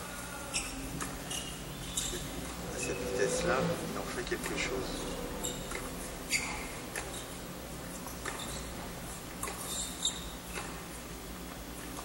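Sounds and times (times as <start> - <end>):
shoe squeaking on court: 0.5 - 3.0, 5.4 - 7.4, 8.0 - 11.0.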